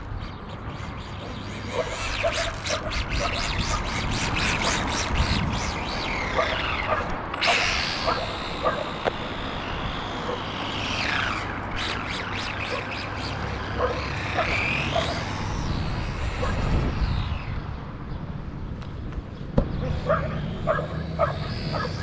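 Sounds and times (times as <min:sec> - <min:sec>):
toy car electric motor whining: 0:00.2 - 0:17.8, 0:19.8 - 0:22.0.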